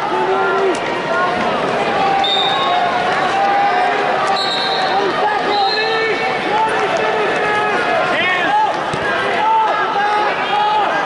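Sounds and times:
arena crowd yelling: 0.0 - 11.0.

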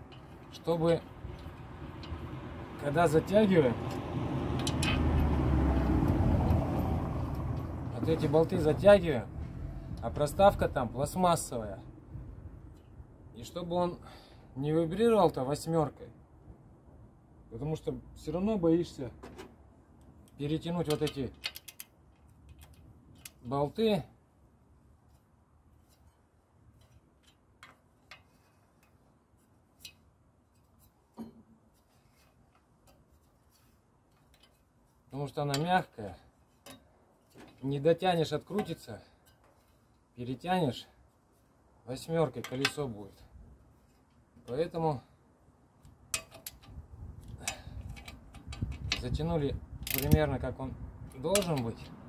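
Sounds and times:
ratchet wrench clicking: 4.6 - 5.0.

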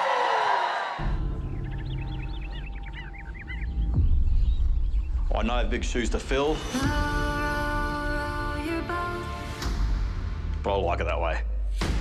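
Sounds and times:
high chirping calls: 1.1 - 5.6.

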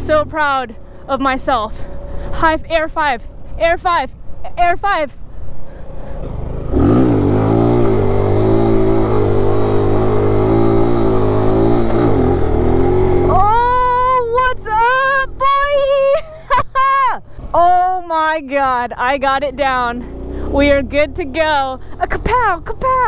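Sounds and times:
motorcycle engine revving: 0.0 - 4.4, 5.7 - 16.0, 19.6 - 23.0
rider whooping and shouting: 13.3 - 17.9.

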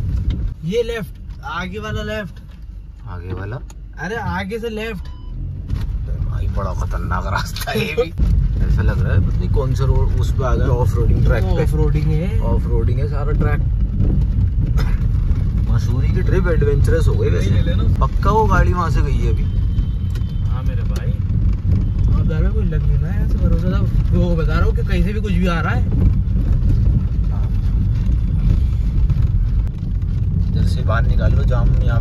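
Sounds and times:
car rumbling over rough track: 0.0 - 32.0.

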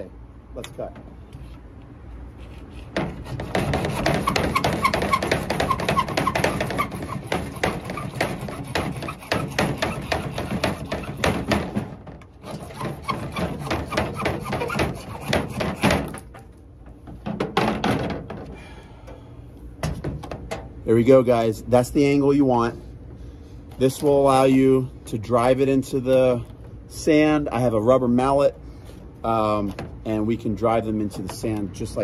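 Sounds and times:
hacksaw cutting plastic pipe: 2.6 - 16.4.

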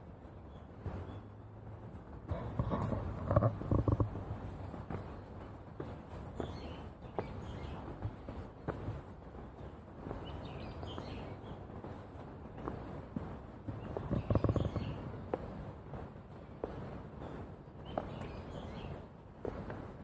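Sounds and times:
footsteps on garden path: 0.0 - 20.0
faint bird chirps: 13.8 - 15.1.

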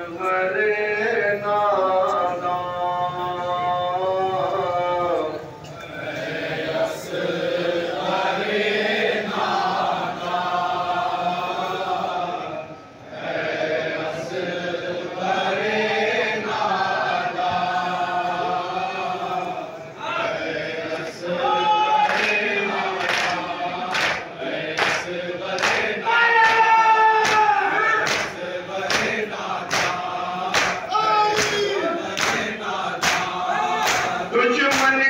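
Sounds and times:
men chanting in unison: 0.0 - 35.0
man chanting a lament: 30.9 - 32.3, 33.4 - 35.0.

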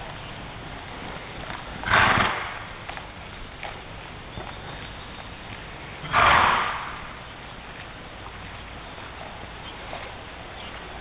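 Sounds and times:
horse trotting on soft ground: 0.0 - 11.0
horse snorting: 1.0 - 2.8, 6.0 - 7.2.

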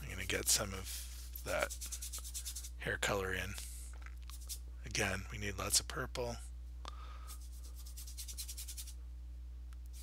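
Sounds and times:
paintbrush scrubbing oil paint: 0.0 - 2.8, 7.3 - 9.0
low electrical hum: 0.0 - 10.0.

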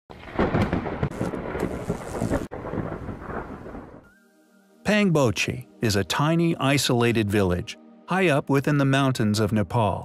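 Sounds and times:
rough rumbling with crackles: 0.1 - 4.0.

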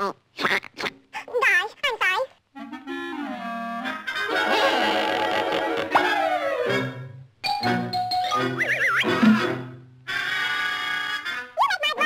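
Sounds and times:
squawky cartoon duck voice: 0.0 - 2.3, 11.6 - 12.0
orchestral cartoon score: 2.6 - 11.4.

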